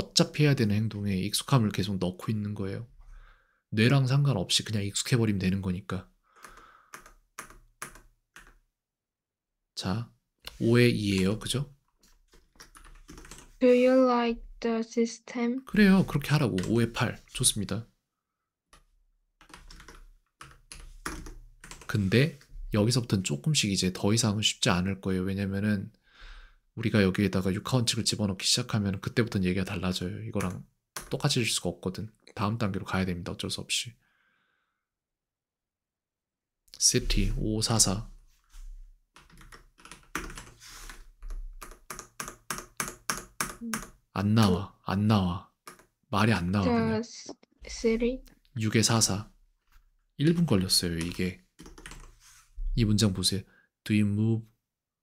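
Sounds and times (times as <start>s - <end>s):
typing on computer keyboard: 6.4s - 8.6s, 12.3s - 13.6s, 16.4s - 17.0s, 18.7s - 21.9s, 30.4s - 31.2s, 39.2s - 44.0s, 45.6s - 46.0s, 50.3s - 52.2s.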